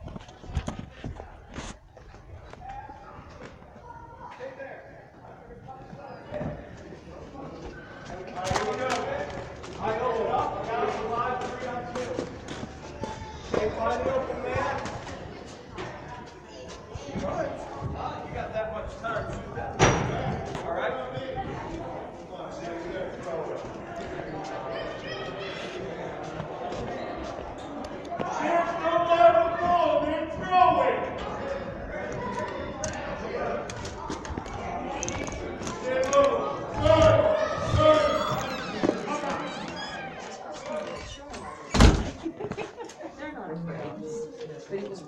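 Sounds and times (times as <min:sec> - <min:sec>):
people chattering: 0:00.0 - 0:45.0.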